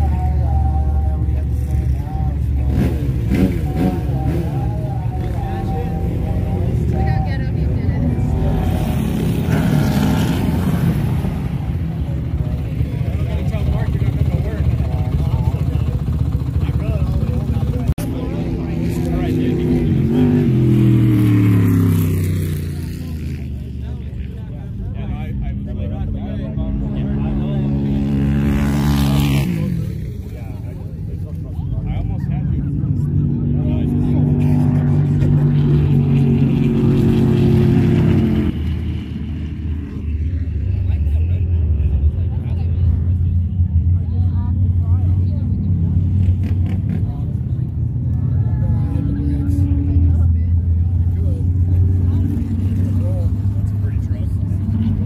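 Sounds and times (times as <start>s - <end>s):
dune buggy engines droning: 0.0s - 55.0s.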